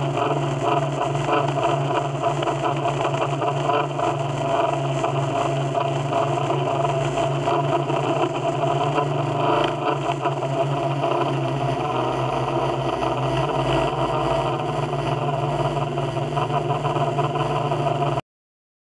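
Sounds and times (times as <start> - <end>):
drone propellers humming: 0.0 - 18.2.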